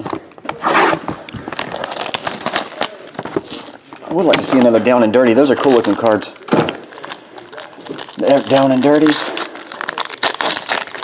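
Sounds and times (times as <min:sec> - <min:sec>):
card pack wrapper crinkling: 0:01.2 - 0:04.8, 0:05.5 - 0:11.0.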